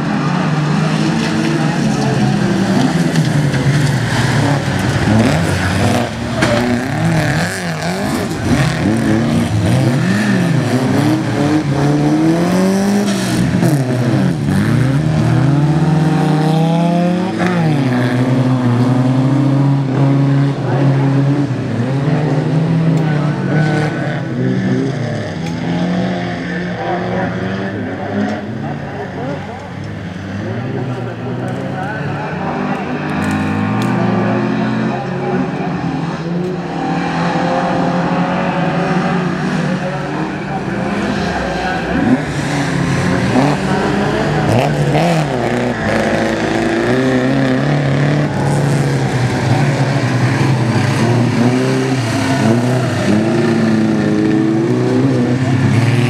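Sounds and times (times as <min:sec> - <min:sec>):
racing car engines revving: 0:00.0 - 0:56.0.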